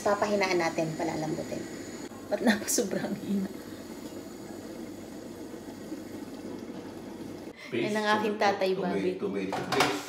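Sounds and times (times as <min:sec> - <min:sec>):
sauce cooking in a pan: 0:00.0 - 0:08.5.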